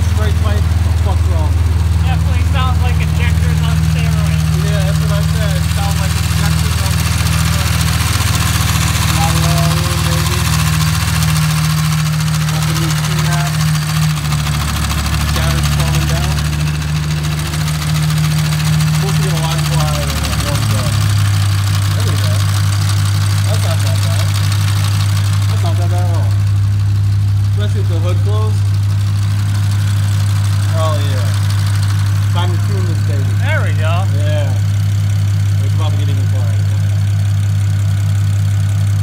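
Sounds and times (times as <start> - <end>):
car engine idling: 0.0 - 39.0.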